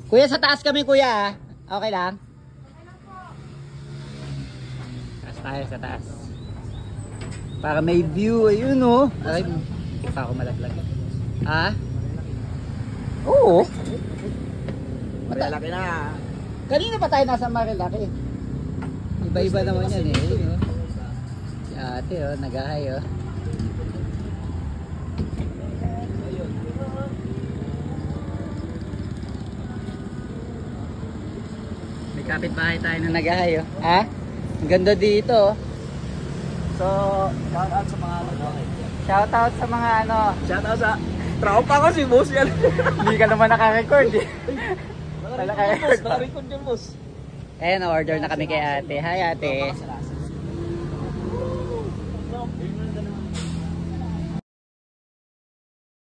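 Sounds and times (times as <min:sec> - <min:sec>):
vehicle engine rumbling: 0:00.0 - 0:54.4.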